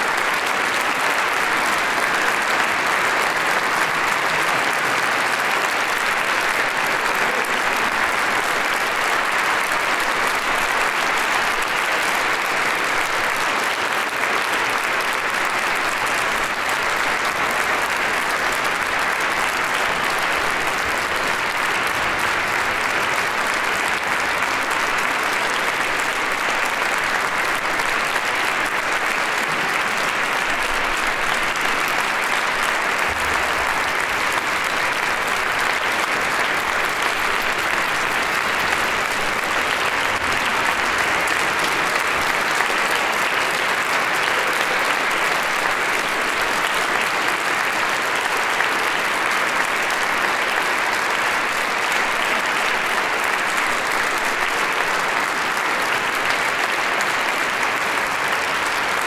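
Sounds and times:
audience applauding: 0.0s - 59.0s.

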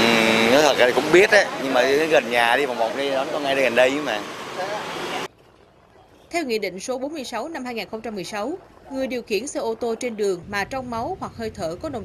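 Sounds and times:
man speaking: 0.0s - 4.3s
roadside traffic rush: 0.0s - 12.0s.

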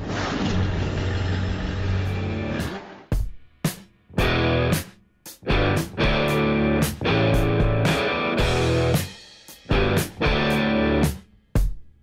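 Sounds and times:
car engine droning: 0.0s - 3.0s.

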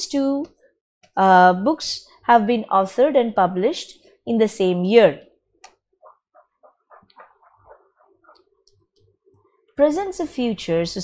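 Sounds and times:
faint small room sounds: 0.0s - 11.0s.

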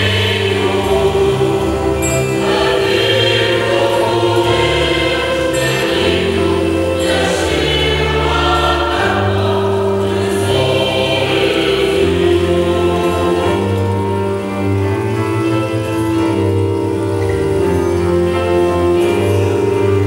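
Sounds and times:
choir singing with accompaniment: 0.0s - 20.0s.

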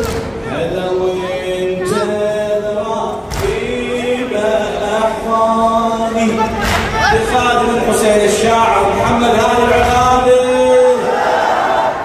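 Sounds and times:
men chanting a lament: 0.4s - 12.0s.

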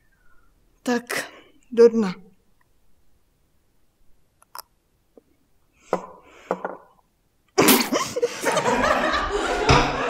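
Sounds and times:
group of people laughing: 7.9s - 10.0s.

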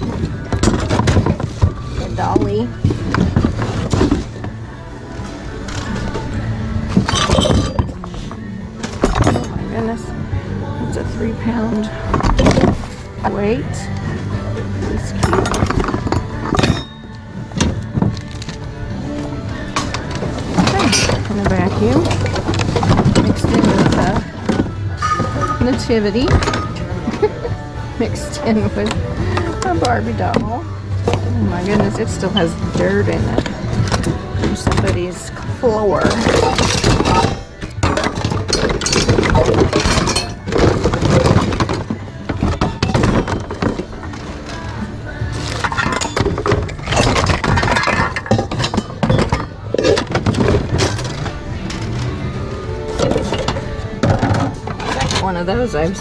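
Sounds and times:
background music with held tones: 0.0s - 56.0s
goods clattering in plastic bins: 0.0s - 56.0s.

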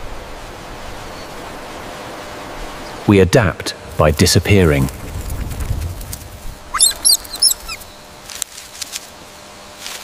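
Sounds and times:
rodents squeaking: 6.7s - 8.0s.

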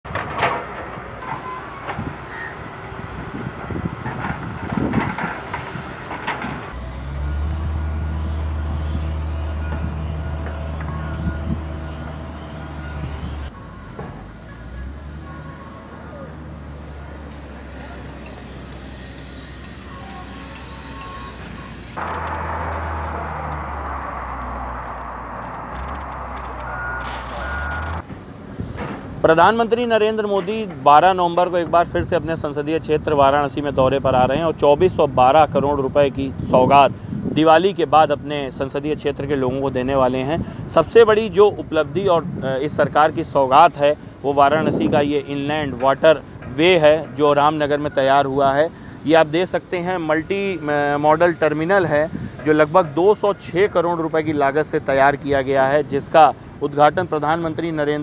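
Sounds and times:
knocks and clatter: 0.1s - 2.1s, 3.6s - 6.8s
heavy machinery engine drone: 0.1s - 29.8s, 40.4s - 58.0s
reverse alarm beeping: 19.9s - 21.8s, 26.7s - 28.0s.

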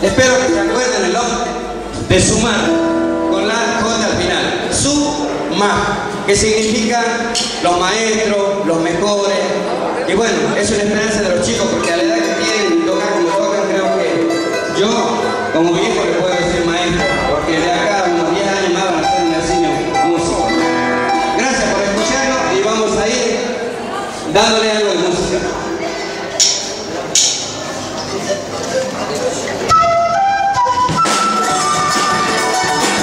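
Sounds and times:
gliding melody line: 0.0s - 6.2s, 11.6s - 23.4s
plucked and strummed strings: 0.0s - 6.3s, 11.3s - 23.4s, 29.6s - 33.0s
indistinct voices: 0.0s - 33.0s
room noise: 0.0s - 33.0s.

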